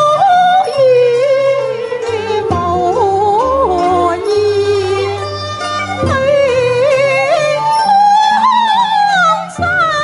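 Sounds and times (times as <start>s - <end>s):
woman singing opera: 0.0s - 5.2s, 6.0s - 10.0s
band accompaniment: 0.0s - 10.0s.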